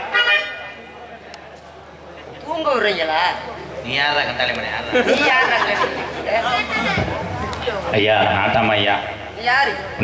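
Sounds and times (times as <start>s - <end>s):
voices chattering: 0.0s - 8.6s.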